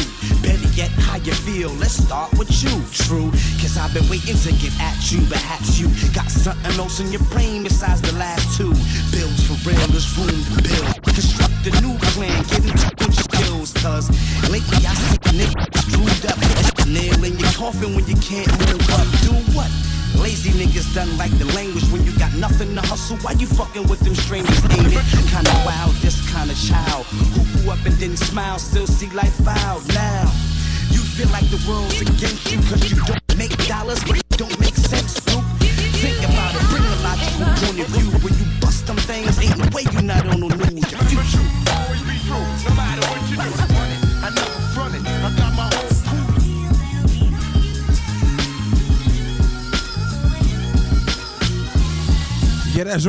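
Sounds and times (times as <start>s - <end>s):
rapping over a heavy bass beat: 0.0s - 53.0s.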